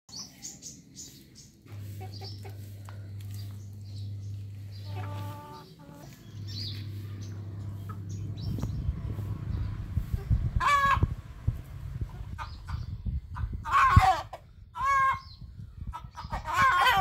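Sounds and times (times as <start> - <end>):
low steady hum: 0.1 - 16.8
small birds chirping: 0.1 - 17.0
hen clucking: 1.6 - 17.0.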